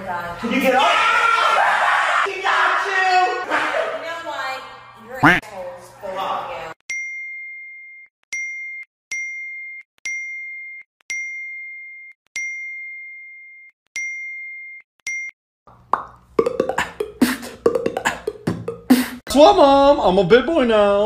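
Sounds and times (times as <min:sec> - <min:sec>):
person beatboxing: 0:16.4 - 0:19.3.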